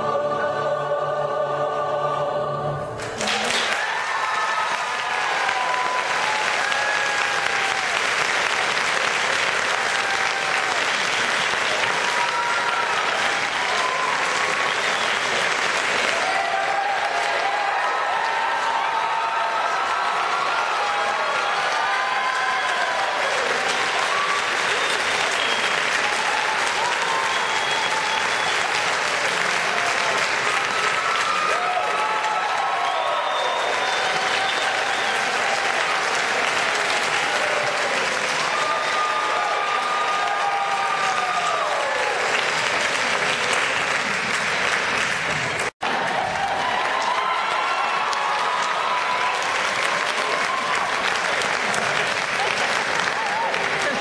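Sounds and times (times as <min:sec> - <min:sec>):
choir singing a chord: 0:00.0 - 0:03.2
audience applause: 0:03.0 - 0:54.0
audience cheering and whooping: 0:03.1 - 0:44.2, 0:45.3 - 0:54.0.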